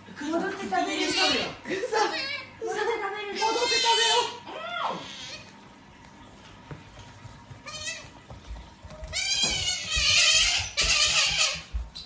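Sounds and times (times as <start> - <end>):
otter squealing: 0.8 - 2.5, 3.3 - 5.5, 9.0 - 12.0.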